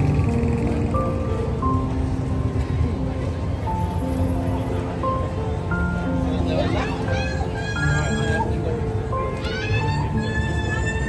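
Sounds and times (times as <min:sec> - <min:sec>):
city sidewalk rumble: 0:00.0 - 0:11.0
music playing: 0:00.0 - 0:11.0.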